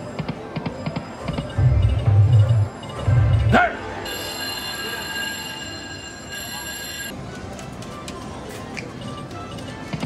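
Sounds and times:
high chime tones: 0:04.0 - 0:07.1.

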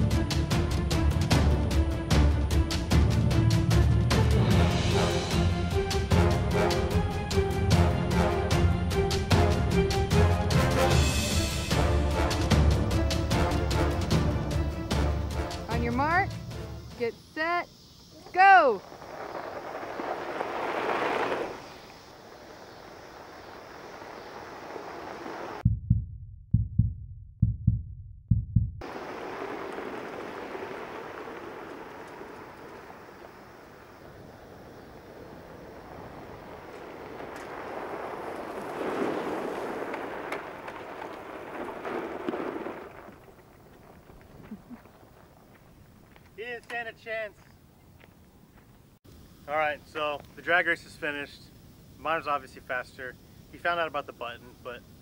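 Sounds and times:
carts driving over gravel: 0:18.2 - 0:25.6, 0:28.8 - 0:47.5.

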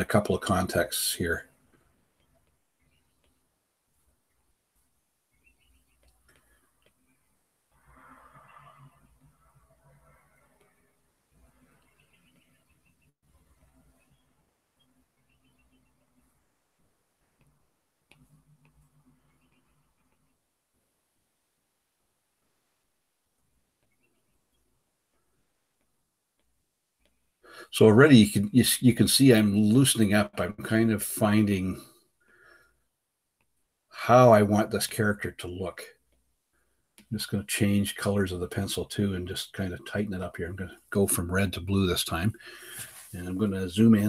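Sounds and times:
soft clicks: 0:05.5 - 0:07.3, 0:17.3 - 0:20.4
faint hiss: 0:27.1 - 0:32.9, 0:33.9 - 0:44.0.

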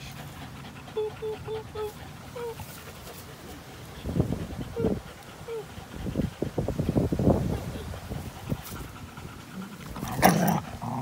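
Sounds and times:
dog breathing and snuffling: 0:00.0 - 0:11.0
dog whining: 0:00.8 - 0:02.7, 0:04.6 - 0:05.8.

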